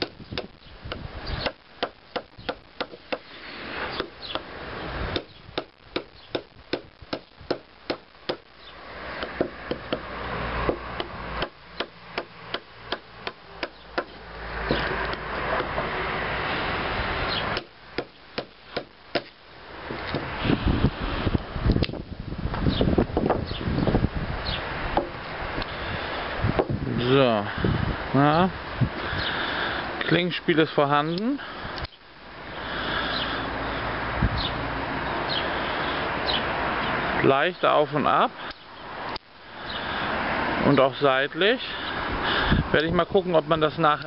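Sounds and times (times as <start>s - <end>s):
rustling noise: 19.8s - 24.0s.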